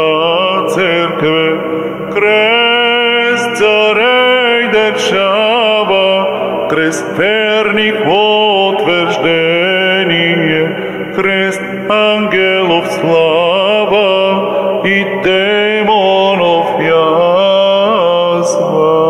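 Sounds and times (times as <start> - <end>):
held low drone: 0.0 - 19.0
solo voice chanting: 0.0 - 19.0.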